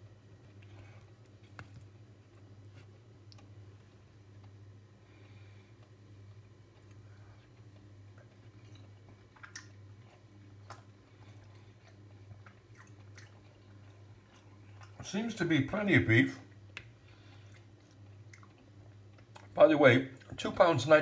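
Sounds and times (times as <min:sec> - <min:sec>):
steady low hum: 0:00.0 - 0:21.0
faint chewing: 0:00.4 - 0:15.1, 0:16.4 - 0:20.5.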